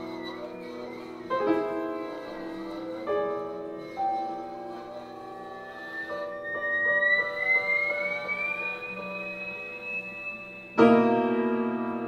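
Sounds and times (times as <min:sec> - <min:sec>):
guitar high tone gliding upward: 0:00.0 - 0:12.0.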